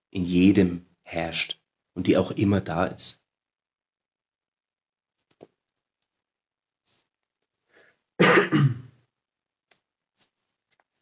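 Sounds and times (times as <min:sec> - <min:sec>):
person clearing throat: 0:08.2 - 0:09.0.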